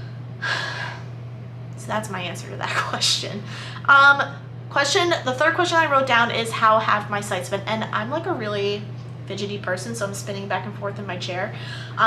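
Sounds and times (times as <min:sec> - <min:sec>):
steady low hum: 0:00.0 - 0:12.0
woman speaking: 0:01.8 - 0:12.0
woman breathing in: 0:03.5 - 0:03.8, 0:11.6 - 0:12.0.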